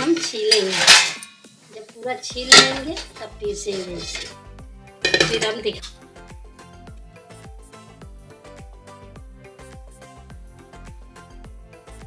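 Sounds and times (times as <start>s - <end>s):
metal pot clattering in sink: 0.0s - 1.4s, 2.5s - 4.4s, 5.0s - 5.9s
background music with steady beat: 0.0s - 12.0s.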